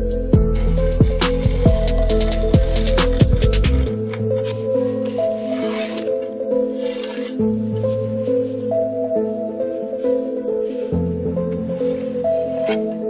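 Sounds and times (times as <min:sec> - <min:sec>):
sustained music tones: 0:00.0 - 0:13.0
driving drum beat: 0:00.4 - 0:03.9.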